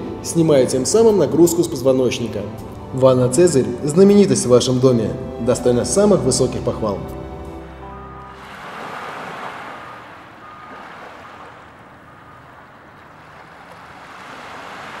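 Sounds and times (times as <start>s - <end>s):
background music: 0.0s - 11.0s
ocean waves washing in and out: 7.5s - 15.0s.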